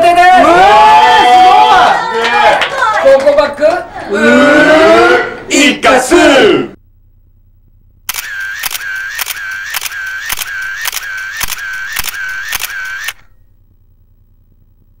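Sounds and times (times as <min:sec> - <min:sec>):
film winder whine: 0:07.0 - 0:15.0
camera shutter clicks: 0:08.1 - 0:13.3.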